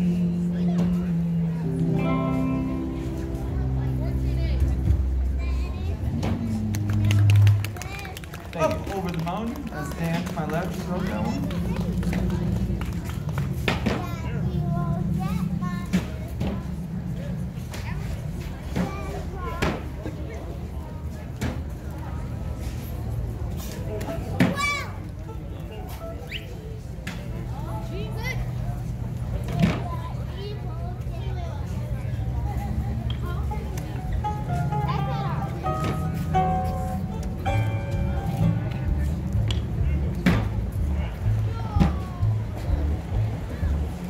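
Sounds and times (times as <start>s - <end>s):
string band playing: 0.0s - 19.8s, 31.7s - 44.0s
steady low rumble: 0.0s - 23.5s, 26.9s - 44.0s
indistinct voices talking: 0.0s - 44.0s
walking double bass line: 0.0s - 44.0s.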